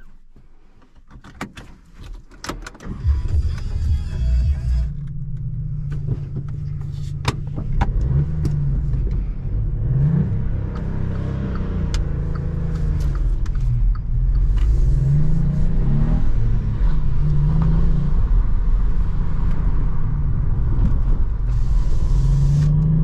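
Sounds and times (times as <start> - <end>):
car engine starting and idling: 0.0 - 23.0.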